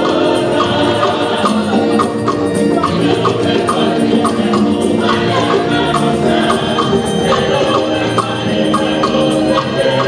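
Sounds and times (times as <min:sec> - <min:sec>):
choir singing: 0:00.0 - 0:10.0
steady percussion beat: 0:00.0 - 0:10.0.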